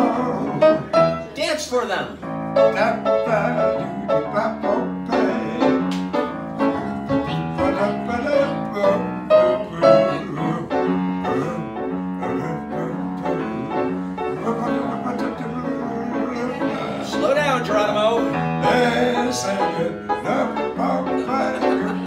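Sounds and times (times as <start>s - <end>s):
blues piano playing: 0.0s - 22.0s.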